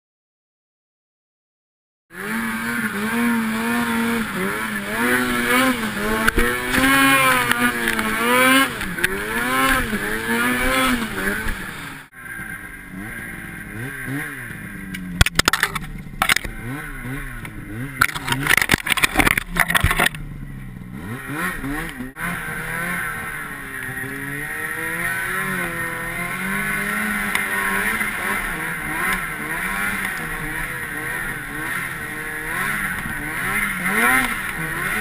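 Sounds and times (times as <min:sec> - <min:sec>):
snowmobile engine revving: 0:02.1 - 0:35.0.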